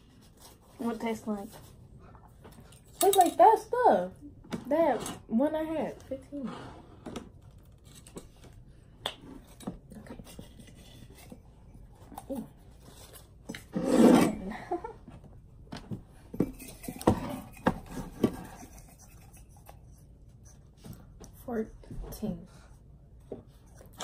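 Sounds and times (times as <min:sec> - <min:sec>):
spoon and tin cans clinking: 0:02.7 - 0:03.5, 0:16.4 - 0:19.5.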